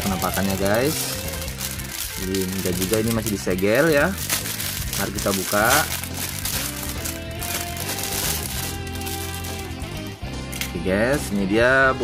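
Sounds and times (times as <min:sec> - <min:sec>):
plastic bag crinkling: 0:00.0 - 0:10.1
background music: 0:00.0 - 0:12.0.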